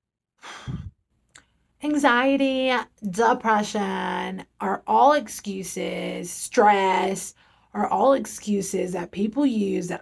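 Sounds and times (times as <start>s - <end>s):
woman sighing: 0.4s - 1.0s
woman speaking: 1.8s - 10.0s.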